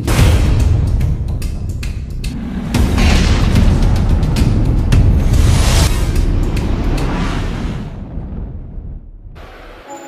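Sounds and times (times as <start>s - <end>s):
deep cinematic boom: 2.3s - 9.4s.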